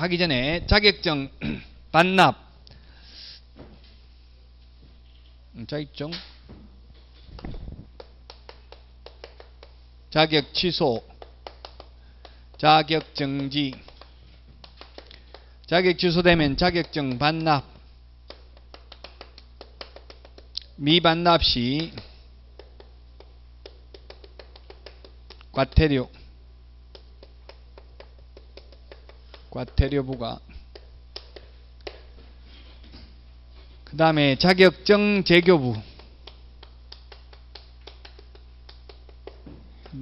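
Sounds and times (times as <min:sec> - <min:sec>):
low steady hum: 0:00.0 - 0:40.0
chalk tapping on chalkboard: 0:07.4 - 0:09.8, 0:11.1 - 0:15.5, 0:22.6 - 0:25.8, 0:26.9 - 0:32.1.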